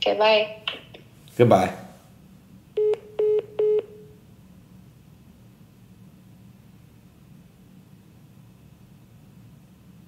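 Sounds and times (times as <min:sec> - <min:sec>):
phone call-ended beeps: 0:02.8 - 0:04.1.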